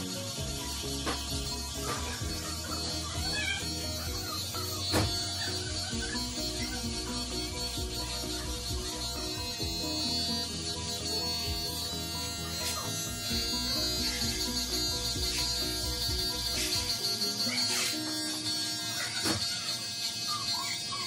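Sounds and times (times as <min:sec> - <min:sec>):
background music with beat: 0:00.0 - 0:19.4
electric hair clippers buzzing: 0:00.0 - 0:21.0.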